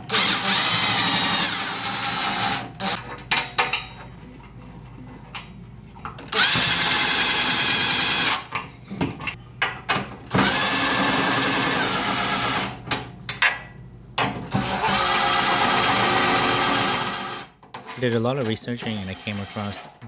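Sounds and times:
cordless impact driver running: 0:00.0 - 0:03.0, 0:06.3 - 0:08.4, 0:10.4 - 0:12.7, 0:14.6 - 0:17.5.

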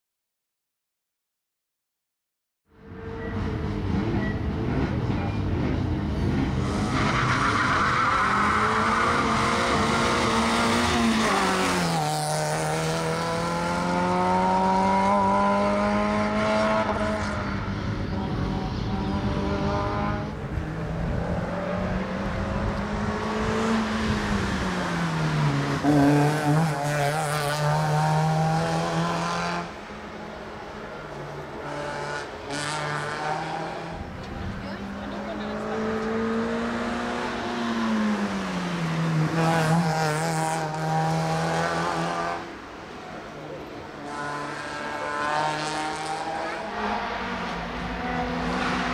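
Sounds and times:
race car engine revving: 0:02.9 - 0:48.9.

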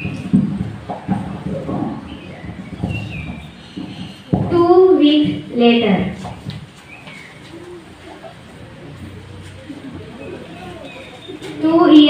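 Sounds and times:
faint bird calls: 0:06.8 - 0:12.0.

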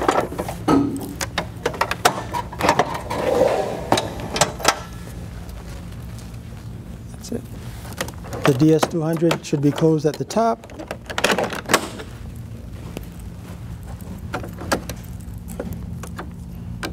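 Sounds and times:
steady low hum: 0:00.0 - 0:16.9.

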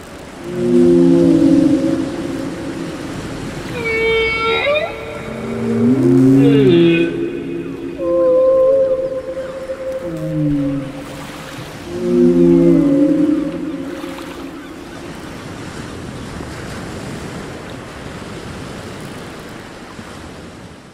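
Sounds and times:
low whale calls: 0:00.0 - 0:16.4
ocean noise: 0:00.0 - 0:20.9.

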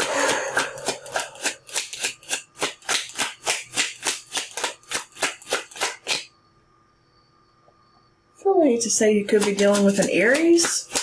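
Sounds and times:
cards being shuffled: 0:00.0 - 0:06.3, 0:09.3 - 0:11.0.

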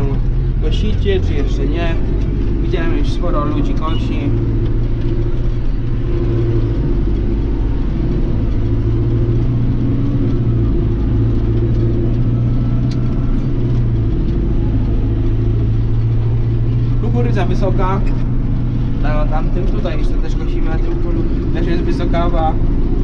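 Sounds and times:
tractor engine droning: 0:00.0 - 0:23.0.

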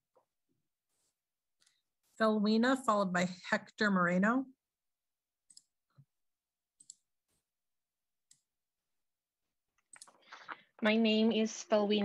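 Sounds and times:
woman's voice: 0:02.2 - 0:04.6.

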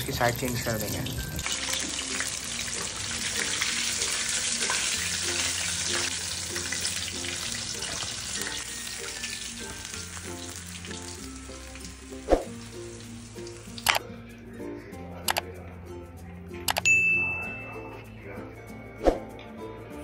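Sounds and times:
chicken deep-frying in oil: 0:00.0 - 0:13.9
quiet background music: 0:00.0 - 0:20.0.

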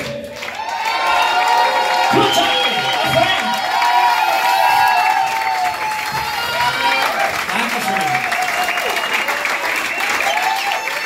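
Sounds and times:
audience cheering: 0:00.0 - 0:11.0
audience clapping: 0:00.0 - 0:11.0.

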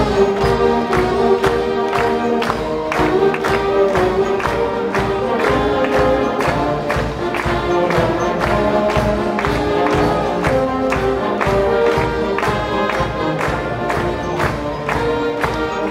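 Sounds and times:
concert band playing: 0:00.0 - 0:15.9.

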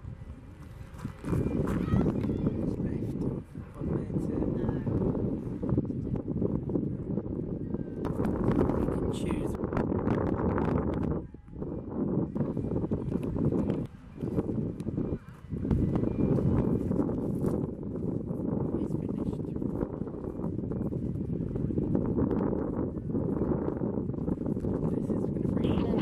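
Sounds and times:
continuous low rumbling: 0:00.0 - 0:26.0.

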